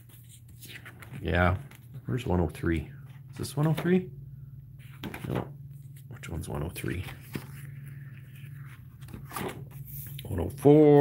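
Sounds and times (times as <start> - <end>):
binder pages turning: 0.0 - 2.2, 4.8 - 11.0
steady low hum: 0.0 - 11.0.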